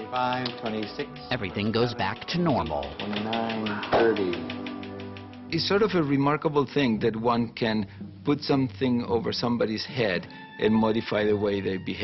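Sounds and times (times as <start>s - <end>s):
background music: 0.0s - 12.0s
rapid magnetic coil clicks: 1.6s - 5.5s.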